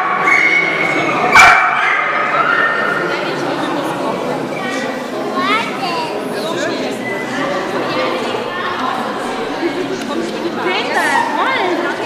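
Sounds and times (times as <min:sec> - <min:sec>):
people chattering in hall: 0:00.0 - 0:12.0.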